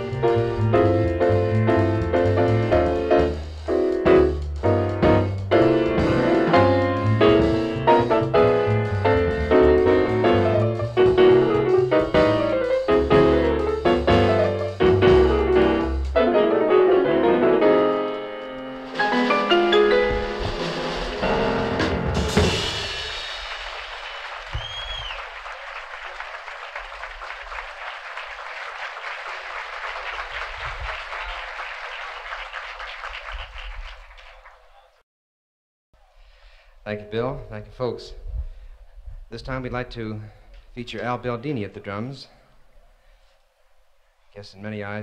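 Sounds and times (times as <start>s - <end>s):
jazz combo playing: 0.0s - 24.0s
audience applause: 22.8s - 34.9s.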